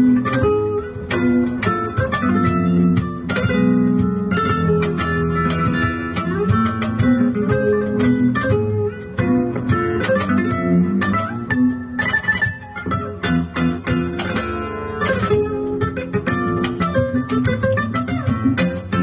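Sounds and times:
flamenco guitar: 0.0s - 19.0s.

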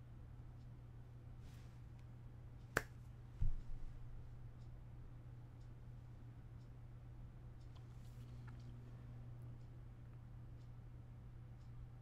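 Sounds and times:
steady low hum: 0.0s - 12.0s
dull low thump: 3.4s - 3.8s.

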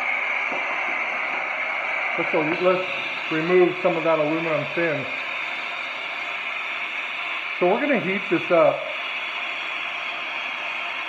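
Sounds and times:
acetylene torch hissing: 0.0s - 11.0s.

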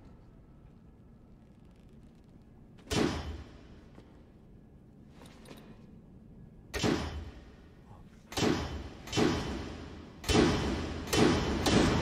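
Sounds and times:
echoing metallic slams: 2.9s - 3.6s, 6.8s - 7.6s, 8.3s - 12.0s.

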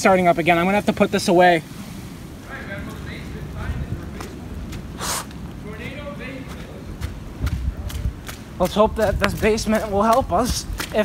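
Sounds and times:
wind rumbling on microphone: 0.0s - 11.0s
footsteps on wet ground: 1.8s - 11.0s.

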